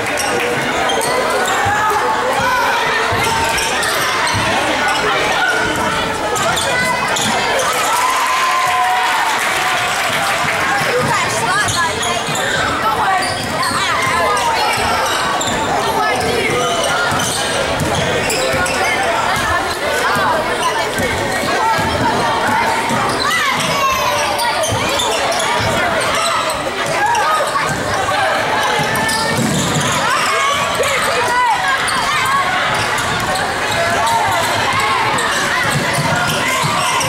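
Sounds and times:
people shouting and talking: 0:00.0 - 0:37.0.

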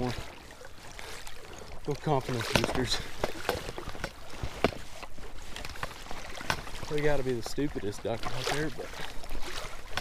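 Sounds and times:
water sloshing around kayak: 0:00.0 - 0:10.0.

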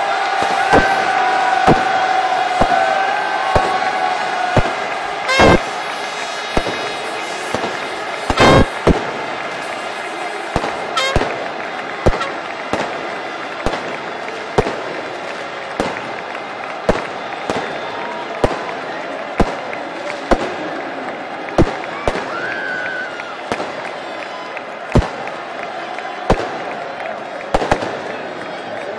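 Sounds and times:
crowd din: 0:00.0 - 0:28.9
firecracker crackling burst: 0:00.2 - 0:24.2, 0:26.1 - 0:28.3
firecrackers banging: 0:00.3 - 0:20.6.

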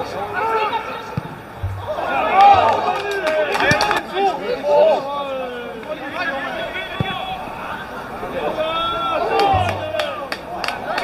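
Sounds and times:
players shouting: 0:00.0 - 0:11.0
sharp knocks: 0:01.6 - 0:02.8.

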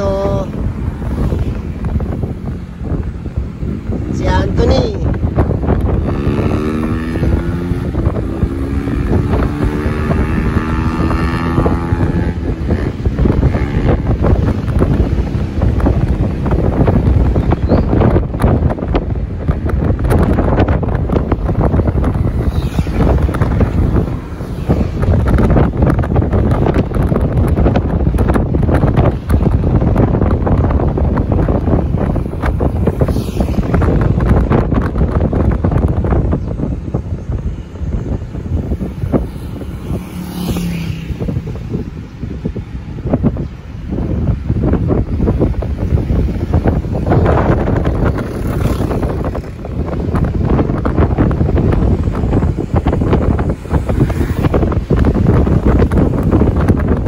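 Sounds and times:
vehicle road noise: 0:00.0 - 0:57.0
wind buffeting microphone: 0:00.0 - 0:57.0.

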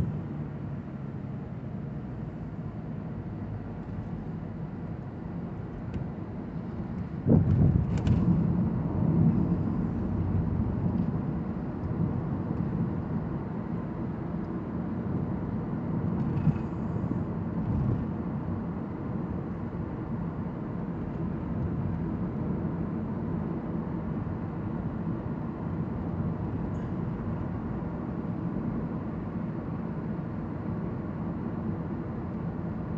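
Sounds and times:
road and tyre noise in car: 0:00.0 - 0:32.9.

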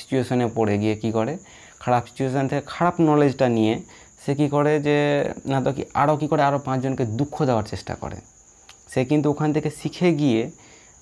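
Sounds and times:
man speaking: 0:00.0 - 0:08.3, 0:08.9 - 0:10.6.

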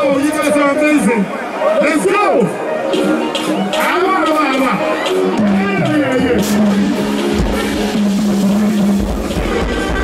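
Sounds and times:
live concert music through pa: 0:00.0 - 0:10.0
heavy bass: 0:05.0 - 0:10.0.

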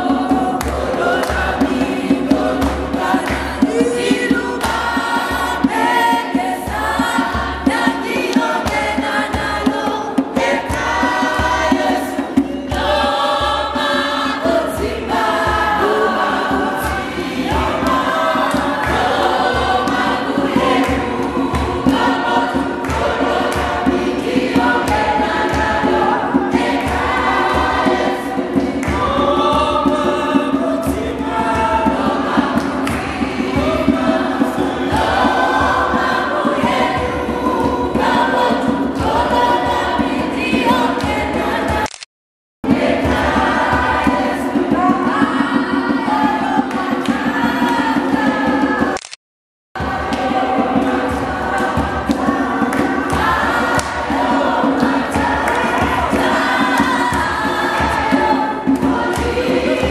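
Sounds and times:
choir singing gospel song: 0:00.0 - 0:41.9, 0:42.6 - 0:49.0, 0:49.8 - 0:59.9.

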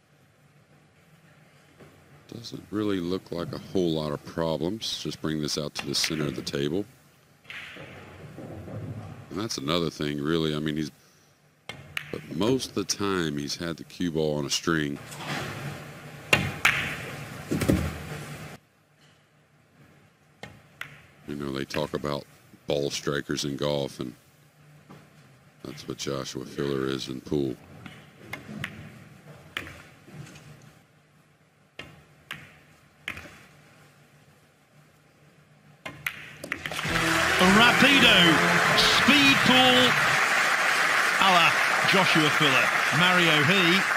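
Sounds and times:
faint steady background noise: 0:00.0 - 0:43.9
pool balls clicking together: 0:35.8 - 0:36.8.

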